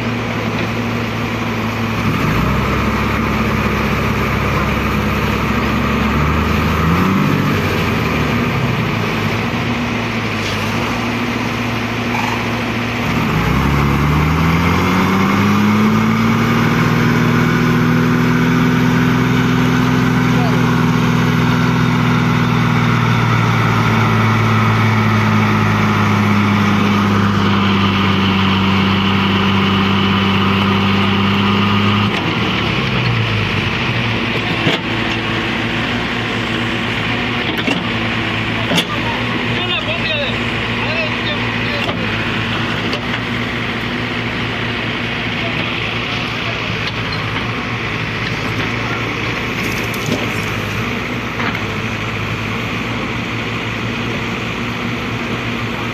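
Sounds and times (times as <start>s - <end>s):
diesel engine revving under load: 0.0s - 55.9s.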